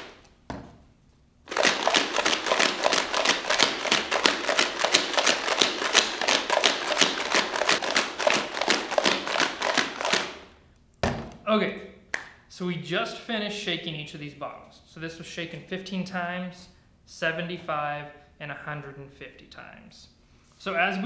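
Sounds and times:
rocks and water rattling in bottle: 1.5 - 10.3.

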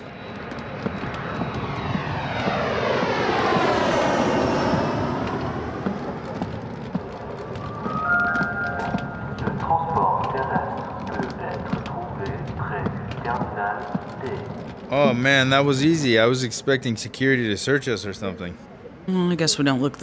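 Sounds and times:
jet airliner passing overhead: 0.0 - 19.1.

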